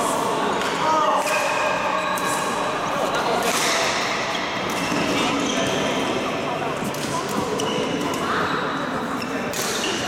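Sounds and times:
echoing indistinct voices: 0.0s - 10.0s.

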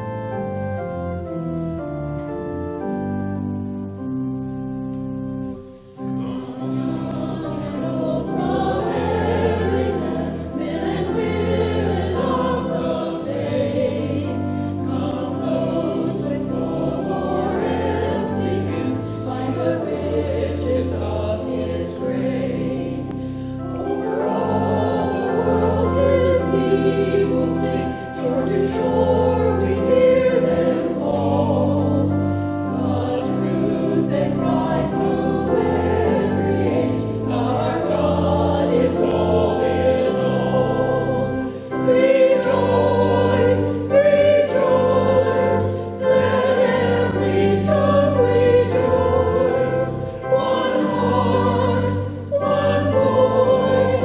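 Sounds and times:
church choir singing: 0.0s - 54.0s
held low accompanying notes: 0.0s - 54.0s.

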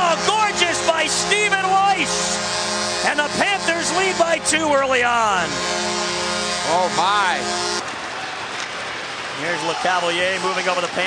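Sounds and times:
person exclaiming excitedly: 0.8s - 2.2s.

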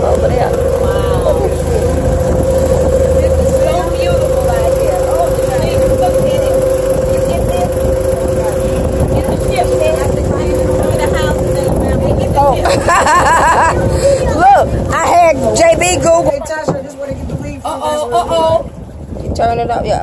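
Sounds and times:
faint voices: 0.0s - 12.9s
boat motor humming: 0.0s - 20.0s
rush of wind and water: 0.0s - 20.0s.

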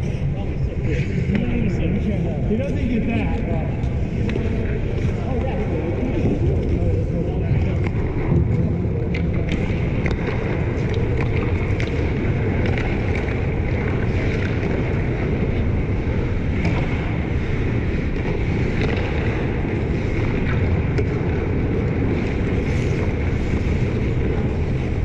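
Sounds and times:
faint players' voices: 0.0s - 14.2s
steady low rumble: 0.0s - 25.0s
sticks and puck clacking on ice: 2.6s - 25.0s.

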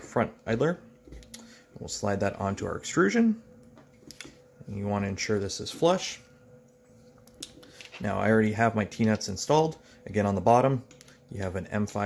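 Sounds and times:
faint handling sounds: 5.8s - 8.3s.

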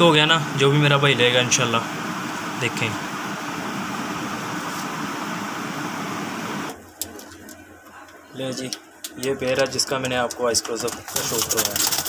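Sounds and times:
electric fan rushing: 0.0s - 7.8s.

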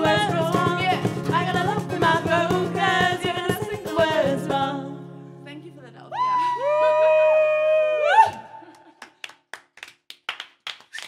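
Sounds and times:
two voices singing in harmony: 0.0s - 5.0s
people clapping: 8.1s - 11.0s.

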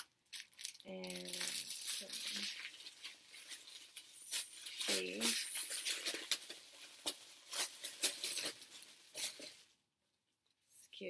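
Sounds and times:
plastic packaging crinkling: 0.0s - 9.8s.

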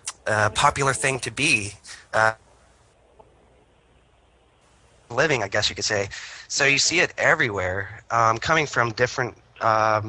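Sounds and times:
man saying uh: 0.0s - 2.4s
faint hiss: 0.0s - 10.0s.

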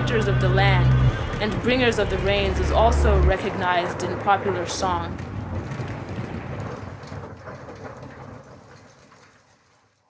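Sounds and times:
low hum: 0.0s - 8.6s
hiss and crackle: 4.8s - 10.0s.

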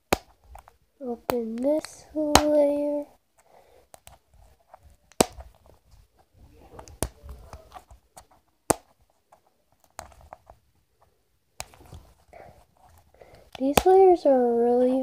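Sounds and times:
sharp plastic clicks: 0.0s - 2.7s, 13.2s - 14.0s.

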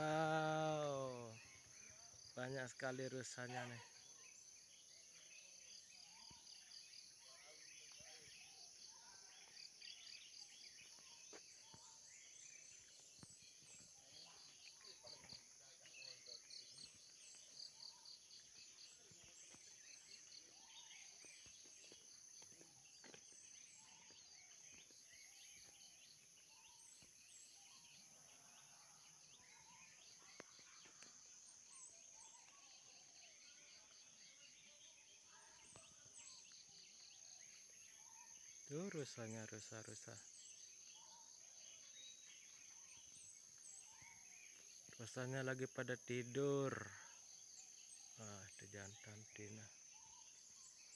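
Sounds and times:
rapidly pulsing insect chirp: 0.0s - 50.9s.

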